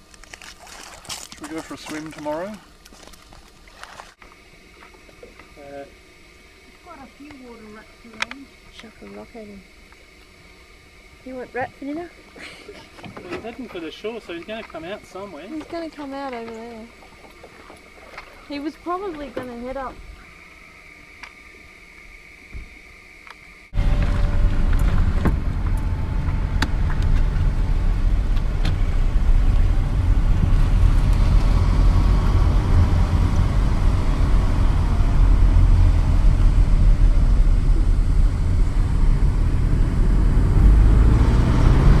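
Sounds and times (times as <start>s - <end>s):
vehicle engine and road rumble: 23.7s - 42.0s.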